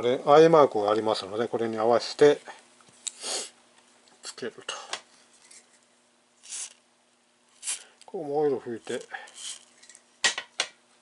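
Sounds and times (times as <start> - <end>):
metal parts clinking: 8.9 - 10.0.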